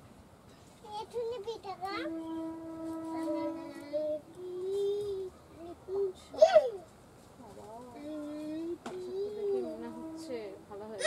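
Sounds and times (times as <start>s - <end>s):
child singing long notes: 2.0s - 6.2s, 7.9s - 10.4s.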